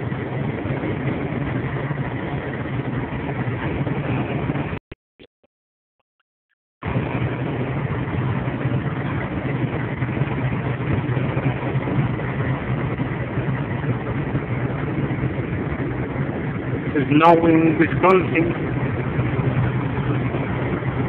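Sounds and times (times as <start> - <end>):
road noise: 0.0 - 4.8, 6.8 - 21.0
truck engine drone: 0.0 - 5.3, 6.8 - 21.0.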